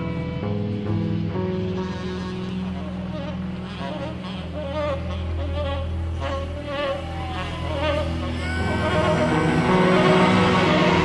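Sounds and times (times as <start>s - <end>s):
band holding low notes: 0.0s - 11.0s
electric slide guitar: 0.0s - 11.0s.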